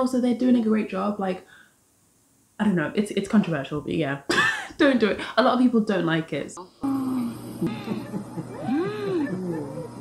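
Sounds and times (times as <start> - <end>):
low steady hum: 6.6 - 10.0
short rising and falling cries: 6.8 - 10.0.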